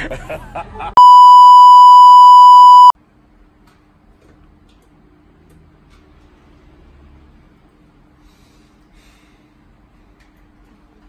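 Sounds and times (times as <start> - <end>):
loud high electronic beep: 1.0 - 3.0.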